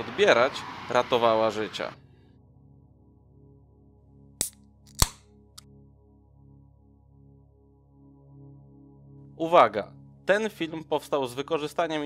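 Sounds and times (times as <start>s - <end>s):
soft ambient music: 0.0s - 12.0s.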